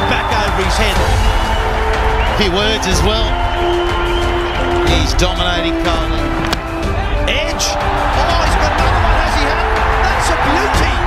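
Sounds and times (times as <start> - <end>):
dramatic cinematic music: 0.0 - 11.0.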